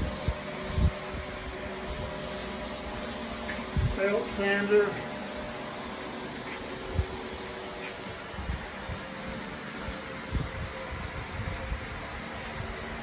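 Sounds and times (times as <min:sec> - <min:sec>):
fan humming: 0:00.0 - 0:13.0.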